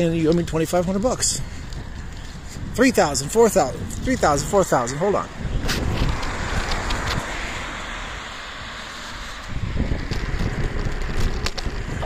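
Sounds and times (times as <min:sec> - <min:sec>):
car passing with tyre noise: 0:04.4 - 0:12.0.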